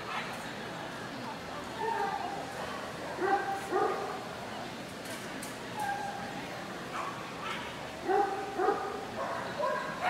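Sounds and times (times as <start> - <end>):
murmur of people talking: 0.0 - 10.0.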